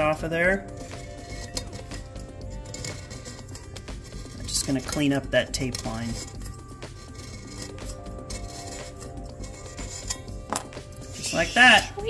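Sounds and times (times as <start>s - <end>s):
background music: 0.0s - 12.0s
razor blade scraping metal: 0.3s - 12.0s.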